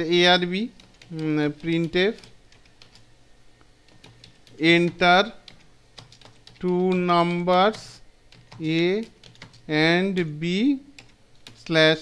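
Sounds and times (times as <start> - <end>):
typing on computer keyboard: 0.8 - 3.1, 3.9 - 9.7, 11.0 - 11.8.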